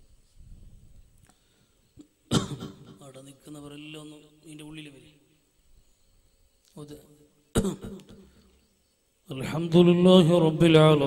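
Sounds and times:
person coughing: 2.3 - 3.0, 7.6 - 8.2.

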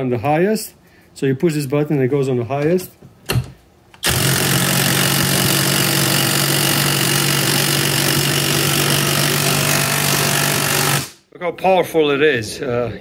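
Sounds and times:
impact wrench hammering: 4.0 - 11.2.

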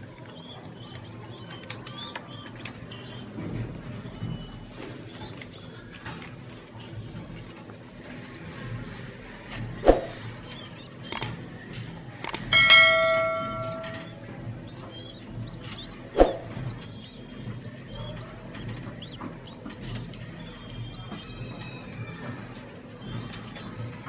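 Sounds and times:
pigeon squabs peeping: 0.0 - 22.3
bell chime: 12.5 - 14.1.

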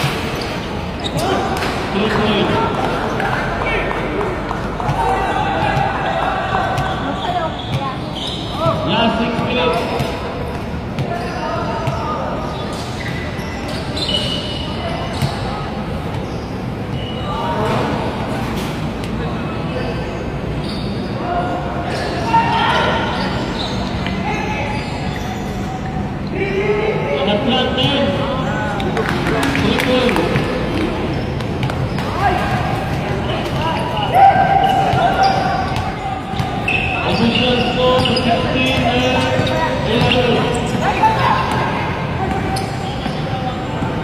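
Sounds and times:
people calling out and chatting: 0.0 - 44.0.

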